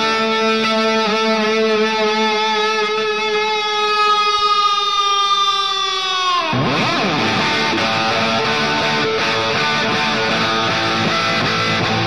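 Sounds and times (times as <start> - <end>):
sustained electric guitar note: 6.5 - 12.0.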